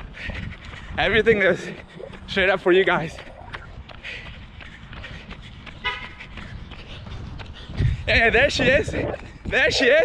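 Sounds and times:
wind rumble: 0:00.0 - 0:10.0.

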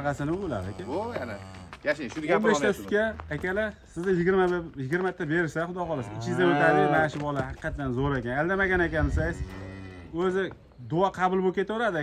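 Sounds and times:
cow mooing: 0:00.5 - 0:01.7, 0:06.0 - 0:07.1, 0:09.0 - 0:10.2.

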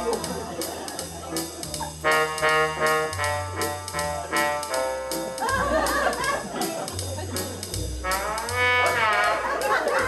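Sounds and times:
bass line: 0:00.0 - 0:10.0
drum machine beat: 0:00.0 - 0:10.0
electronic organ playing jazz: 0:00.0 - 0:10.0.

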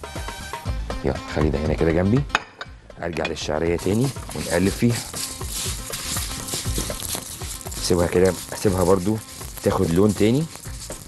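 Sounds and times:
spatula scraping and stirring: 0:03.7 - 0:11.0
noodles sizzling in fat: 0:03.8 - 0:11.0.

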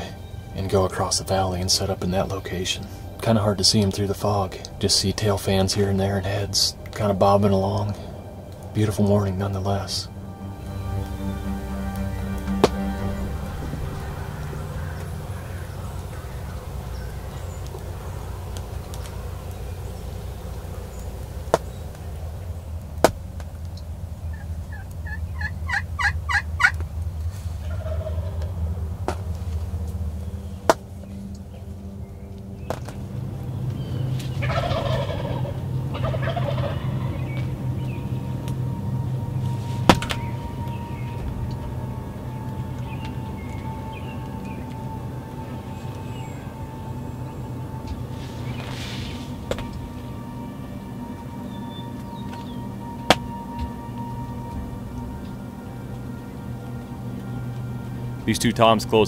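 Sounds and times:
turkeys gobbling: 0:00.0 - 0:59.0.

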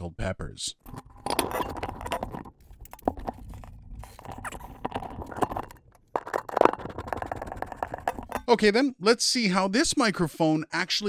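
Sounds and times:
metal parts scraping and clicking: 0:00.8 - 0:08.5.

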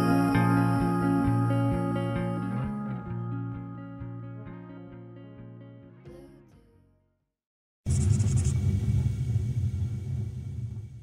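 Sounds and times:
deep rumble: 0:07.9 - 0:11.0.

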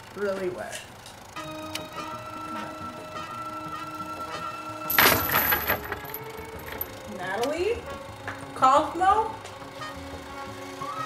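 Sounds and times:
suspense music held chord: 0:01.2 - 0:11.0.

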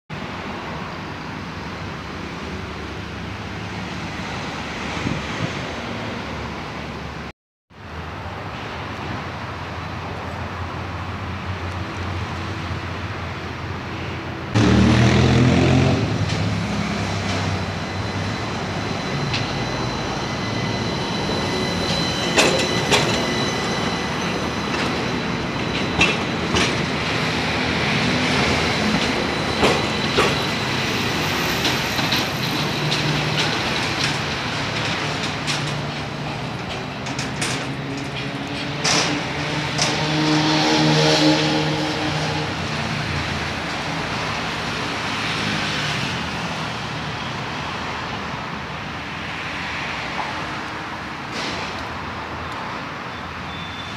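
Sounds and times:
tram rolling on track: 0:00.1 - 0:53.9
wheels clicking over rail joints: 0:24.7 - 0:27.2, 0:31.5 - 0:40.1.

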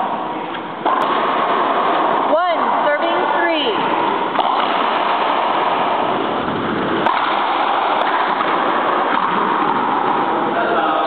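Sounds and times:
room noise hiss: 0:00.0 - 0:11.0
racquetball ball cracks: 0:00.5 - 0:02.2, 0:04.3 - 0:10.5.

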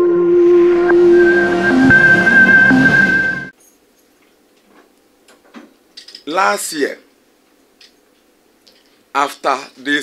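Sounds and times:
synthesized held tones: 0:00.0 - 0:03.5
whooshing swell: 0:00.0 - 0:03.5.

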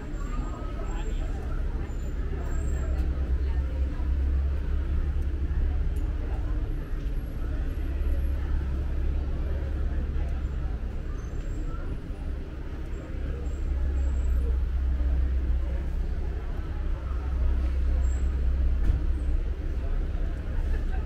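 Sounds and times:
street noise: 0:00.0 - 0:21.0
vehicle engine rumble: 0:00.0 - 0:21.0.

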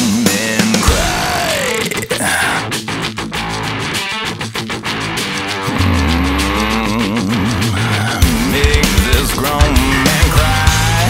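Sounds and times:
heavy rock band playing: 0:00.0 - 0:11.0
warbling gliding guitar tones: 0:03.1 - 0:08.5.

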